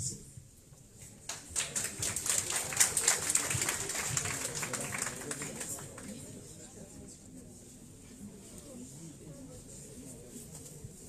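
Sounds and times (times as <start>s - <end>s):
audience applauding: 1.3s - 6.2s.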